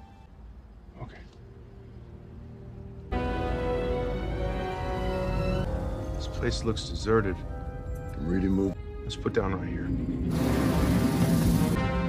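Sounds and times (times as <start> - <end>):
orchestral film score: 0.0 - 12.0.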